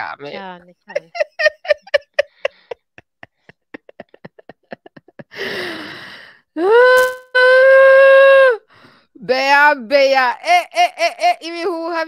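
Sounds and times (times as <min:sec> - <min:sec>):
woman laughing: 0:00.9 - 0:05.5
woman high vocal eee: 0:06.6 - 0:08.6.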